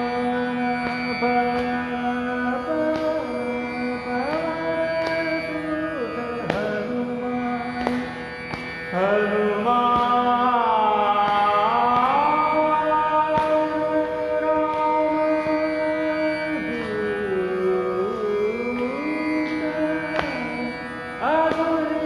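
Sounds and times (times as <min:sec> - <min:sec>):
tanpura drone: 0:00.0 - 0:22.0.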